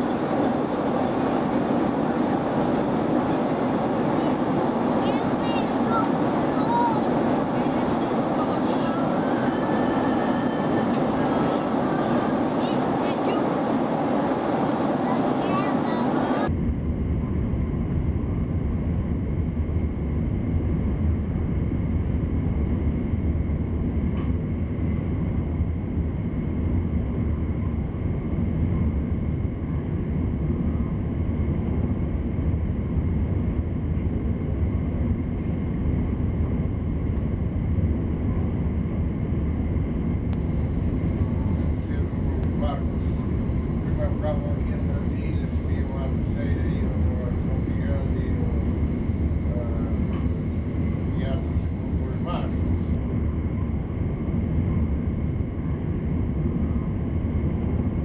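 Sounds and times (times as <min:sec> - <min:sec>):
muffled low rumble: 0:00.0 - 0:58.0.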